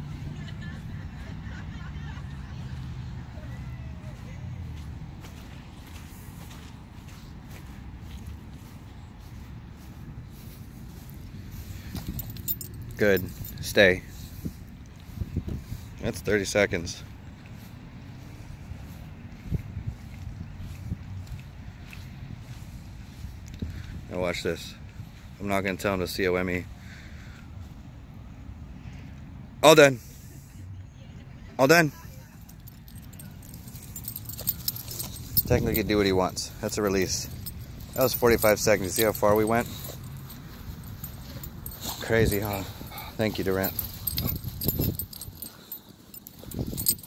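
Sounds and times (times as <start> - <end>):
footsteps on grass: 4.0 - 12.4
keys jingling: 11.0 - 14.6, 32.2 - 47.0.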